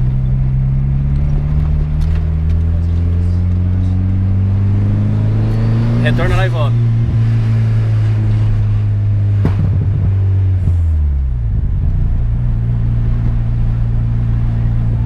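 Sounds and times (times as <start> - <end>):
car engine droning from inside: 0.0 - 15.0.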